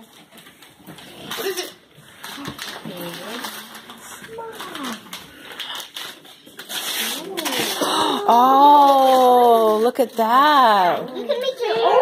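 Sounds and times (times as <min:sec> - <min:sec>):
wrapping paper tearing: 0:00.0 - 0:10.2
children's voices murmuring: 0:10.7 - 0:12.0.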